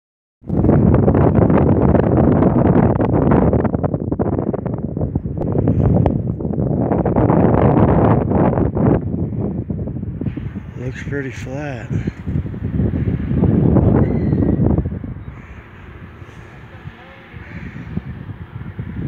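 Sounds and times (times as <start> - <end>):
wind buffeting microphone: 0.4 - 19.0.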